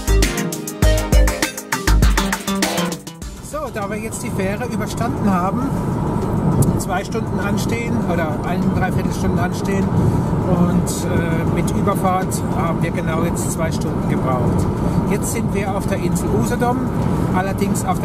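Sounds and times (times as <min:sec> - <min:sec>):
background music: 0:00.0 - 0:18.0
car engine and road noise: 0:03.1 - 0:18.0.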